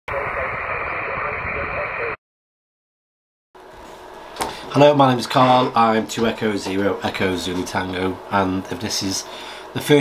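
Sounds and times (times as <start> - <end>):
faint voice in radio noise: 0.1 - 2.2
shortwave radio static hiss: 0.1 - 2.2.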